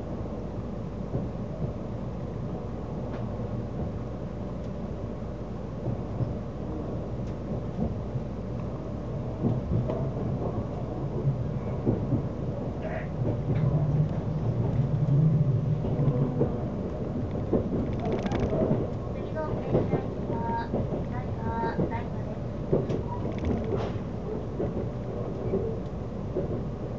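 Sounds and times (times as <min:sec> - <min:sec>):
train wheels rumbling on rail: 0:00.0 - 0:26.9.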